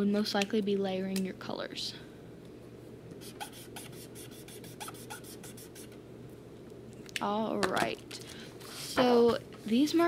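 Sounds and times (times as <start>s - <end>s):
marker rubbing on paper: 3.2s - 6.0s.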